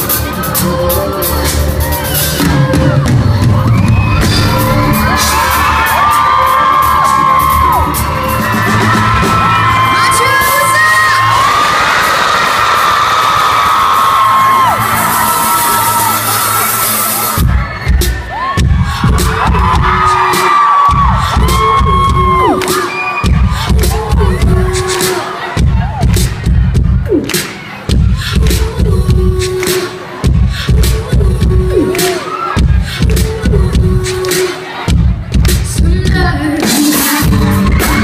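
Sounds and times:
live band music: 0.0 - 11.3, 13.8 - 38.0
heavy bass beat: 0.0 - 11.4, 13.8 - 38.0
crowd screaming and cheering: 0.0 - 38.0.

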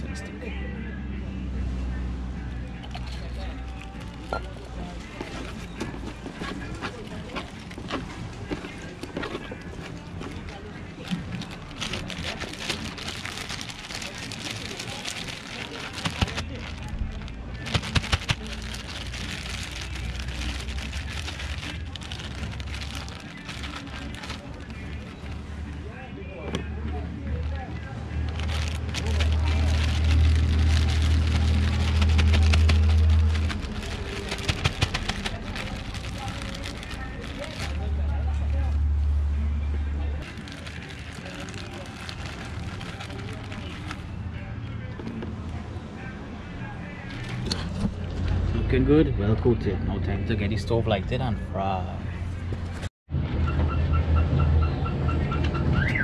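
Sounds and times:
plastic bag crinkling: 2.9 - 25.4, 28.3 - 37.9, 40.2 - 44.1.

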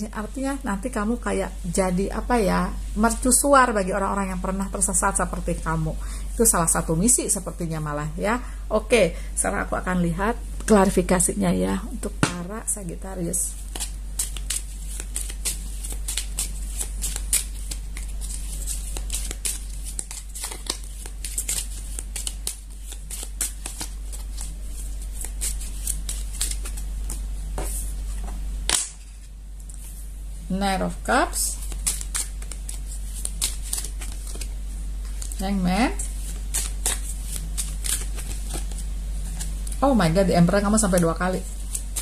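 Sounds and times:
cards being shuffled by hand: 13.5 - 30.0, 31.5 - 39.8, 40.8 - 42.0.

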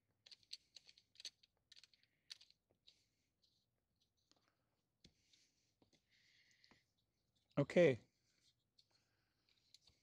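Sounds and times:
small clicks and scrapes: 0.0 - 7.6, 8.2 - 10.0.

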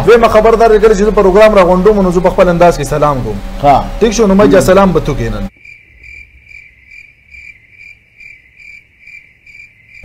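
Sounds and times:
cricket chirping: 5.5 - 10.0.

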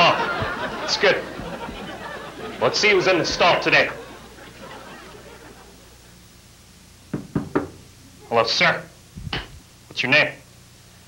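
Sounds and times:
knocks on stall door: 7.1 - 7.9.

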